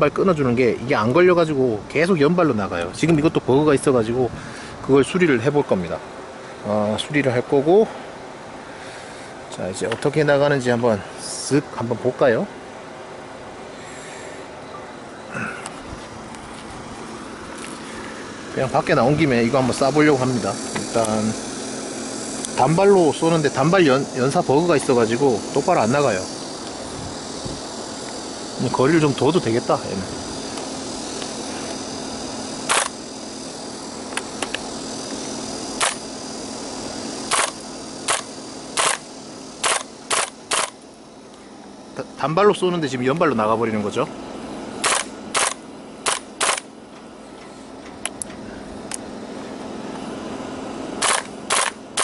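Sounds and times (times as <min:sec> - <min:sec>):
distant road traffic: 0:00.0 - 0:52.0
rifle action clicks: 0:32.7 - 0:32.9, 0:37.3 - 0:39.0, 0:39.6 - 0:40.8, 0:44.8 - 0:46.7, 0:51.0 - 0:51.8
airsoft rifle shots: 0:32.7 - 0:33.0, 0:35.8 - 0:36.0, 0:37.3 - 0:40.8, 0:44.8 - 0:46.7, 0:51.0 - 0:52.0.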